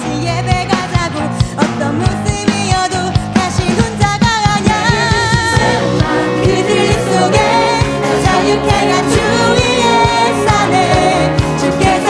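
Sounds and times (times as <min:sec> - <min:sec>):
female lead vocalist singing: 0:00.0 - 0:12.0
full band playing: 0:00.0 - 0:12.0
steady drum beat: 0:00.4 - 0:12.0
backing singers: 0:03.7 - 0:12.0.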